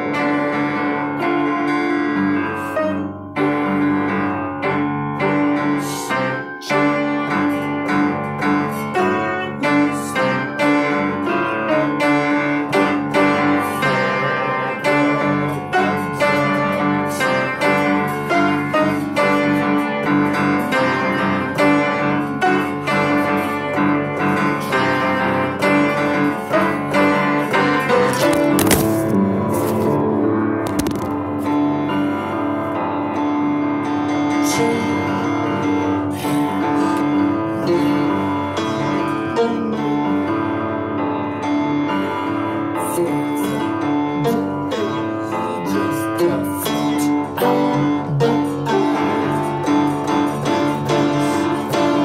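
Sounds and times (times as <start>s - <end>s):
piano playing notes and chords: 0.0s - 52.0s.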